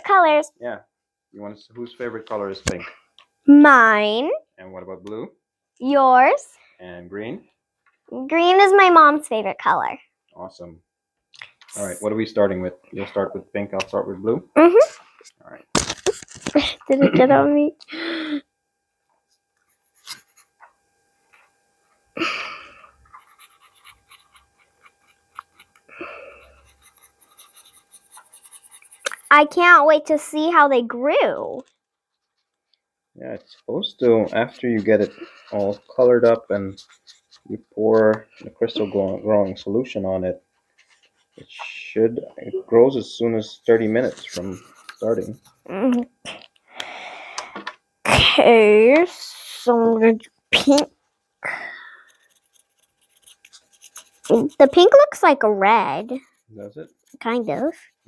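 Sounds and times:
markers scratching on paper: 0:19.6 - 0:22.0, 0:23.0 - 0:30.6, 0:33.4 - 0:41.8, 0:43.3 - 0:45.8, 0:52.0 - 0:58.0.

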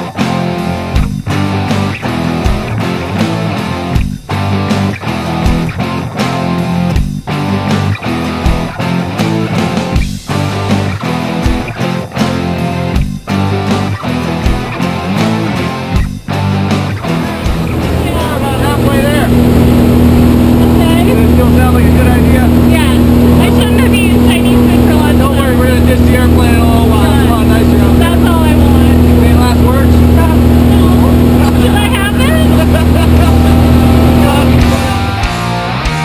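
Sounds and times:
plane engine and propeller drone: 0:17.1 - 0:35.3.

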